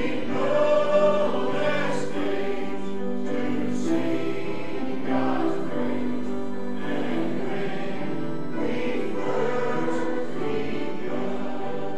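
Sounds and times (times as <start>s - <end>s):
congregation singing a hymn: 0.0s - 11.9s.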